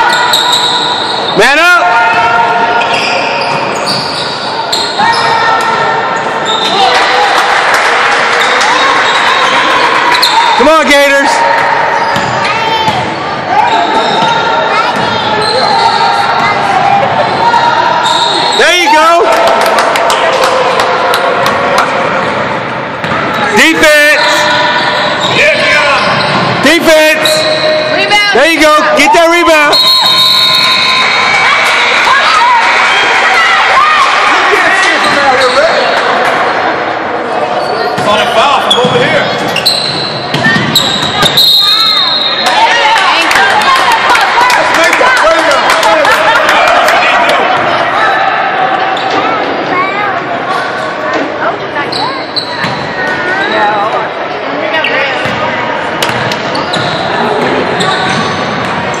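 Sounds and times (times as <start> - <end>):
sneakers squeaking: 0.0 - 1.4, 2.1 - 7.0, 8.4 - 10.7, 11.6 - 18.7, 21.4 - 28.3, 35.0 - 36.1, 37.4 - 42.8, 51.7 - 54.0, 54.7 - 59.0
players and spectators voices: 0.0 - 59.0.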